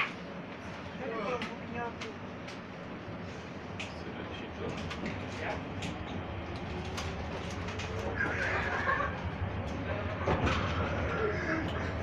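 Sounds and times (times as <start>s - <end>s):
tram rolling rumble: 0.0s - 12.0s.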